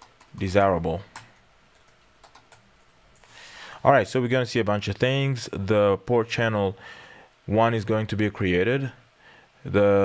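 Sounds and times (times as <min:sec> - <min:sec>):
faint keyboard keystrokes: 0:01.1 - 0:02.9.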